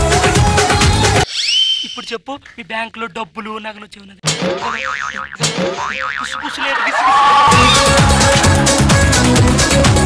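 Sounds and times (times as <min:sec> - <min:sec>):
cartoon boing sound effect: 0:04.2 - 0:06.5.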